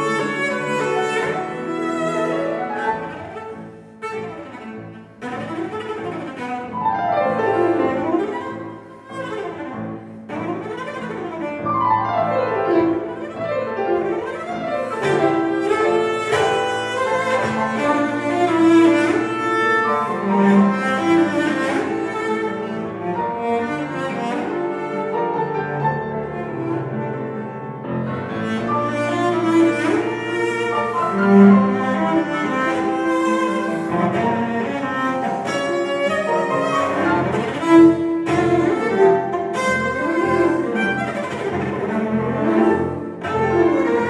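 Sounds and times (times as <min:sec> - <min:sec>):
cello playing: 0:00.0 - 0:44.0
grand piano playing: 0:00.0 - 0:44.0.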